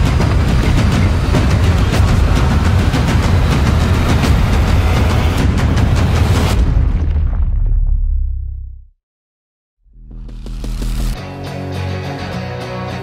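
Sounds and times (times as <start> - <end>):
sharp hits and impacts: 0.0 - 8.8
low rumble: 0.0 - 9.0
trailer music: 0.0 - 9.0, 9.8 - 13.0.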